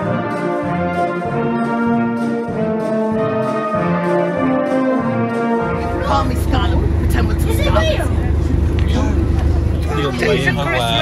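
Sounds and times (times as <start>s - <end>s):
steady low rumble: 5.7s - 11.0s
people talking over one another: 5.8s - 11.0s.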